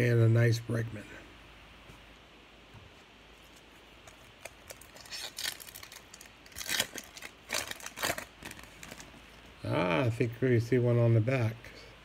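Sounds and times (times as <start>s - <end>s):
foil wrapper tearing and crinkling: 4.0s - 9.4s.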